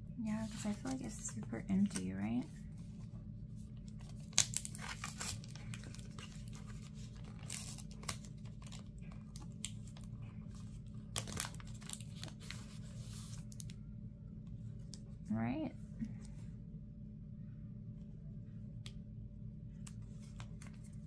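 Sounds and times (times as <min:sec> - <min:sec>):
sticky note peeling and rustling: 0:03.9 - 0:13.7.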